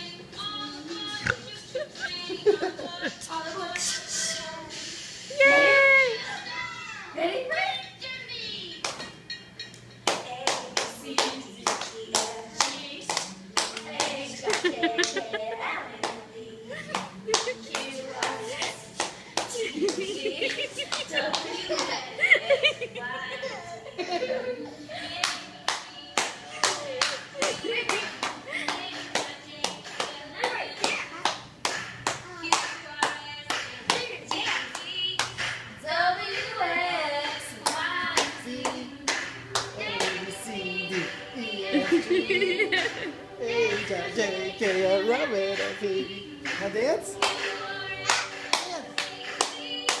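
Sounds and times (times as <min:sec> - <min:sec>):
rhythmic hand clapping: 0:08.8 - 0:22.6, 0:25.1 - 0:50.0.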